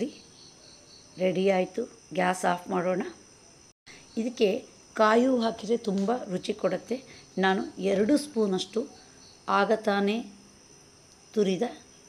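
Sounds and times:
faint high-pitched whine: 0.0s - 12.0s
woman speaking: 1.2s - 3.2s, 4.0s - 10.4s, 11.4s - 11.8s.

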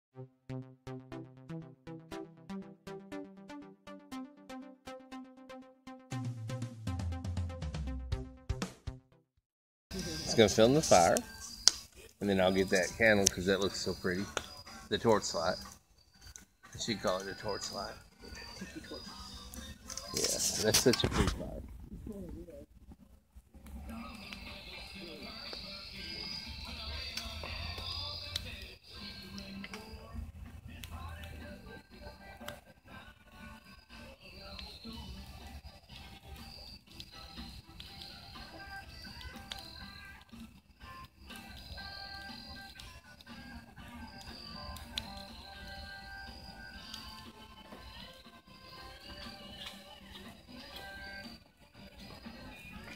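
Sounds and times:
background music with held notes: 0.2s - 9.2s, 9.9s - 21.0s, 23.6s - 52.9s.

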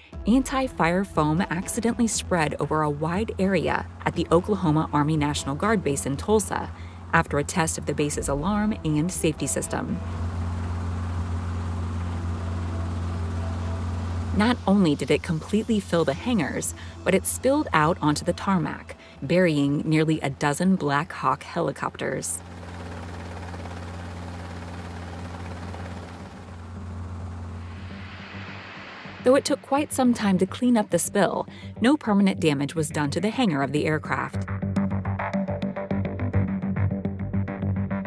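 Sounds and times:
aircraft drone from on board: 0.0s - 30.4s.

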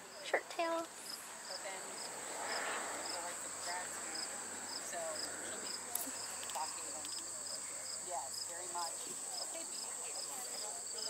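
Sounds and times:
faint people talking: 0.0s - 11.0s.

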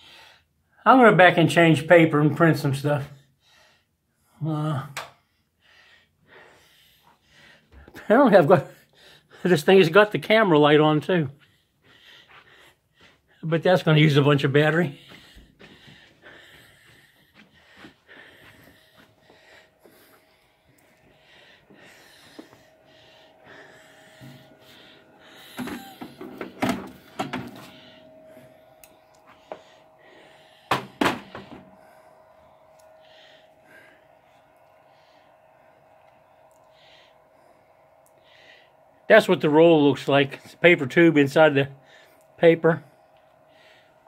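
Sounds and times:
faint steady hum: 5.2s - 44.0s.

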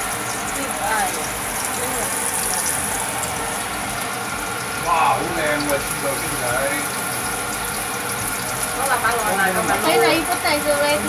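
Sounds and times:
garlic and onion sizzling in oil: 0.0s - 11.0s.

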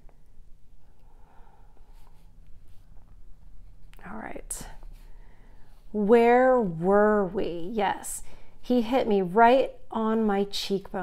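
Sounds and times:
person speaking: 4.0s - 4.9s, 5.9s - 11.0s.

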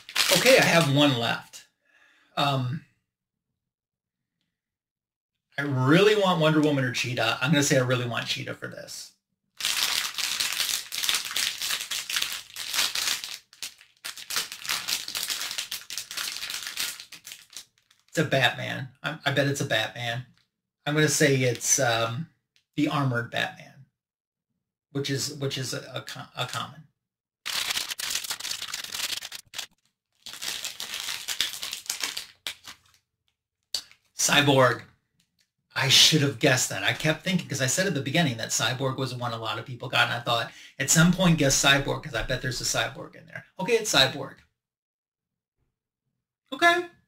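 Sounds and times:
plastic wrapper crinkling: 0.0s - 1.1s, 9.6s - 18.2s, 27.5s - 33.0s, 33.8s - 34.2s.

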